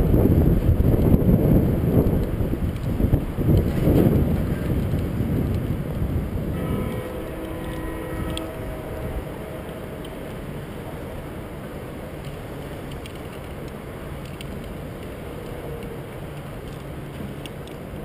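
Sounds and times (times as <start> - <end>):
wind buffeting microphone: 0.0 - 18.0
faint steady tones: 6.5 - 18.0.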